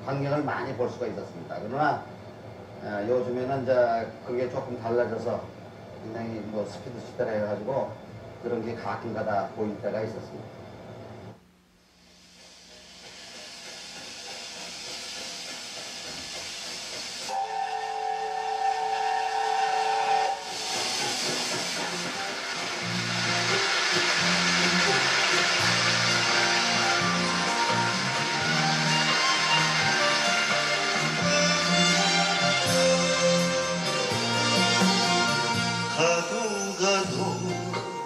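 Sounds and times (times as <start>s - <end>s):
steam hissing: 11.8s - 38.0s
steam whistle blast: 17.2s - 38.0s.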